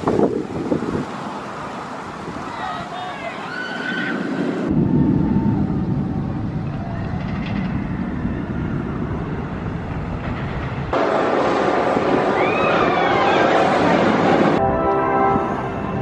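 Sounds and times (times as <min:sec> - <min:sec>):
roller coaster train rumbling on track: 0:00.0 - 0:16.0.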